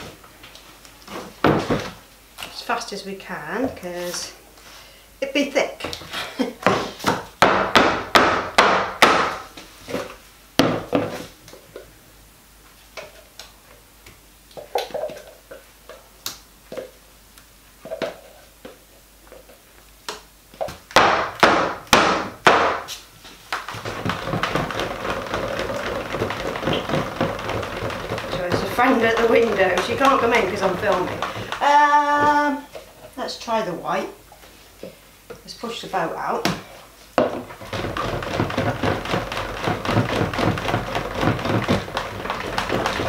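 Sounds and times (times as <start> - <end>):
plastic jug rapped on wooden mould: 1.4 - 2.0, 23.7 - 32.6, 37.2 - 43.0
stick blender whirring: 23.7 - 32.5, 37.5 - 43.0.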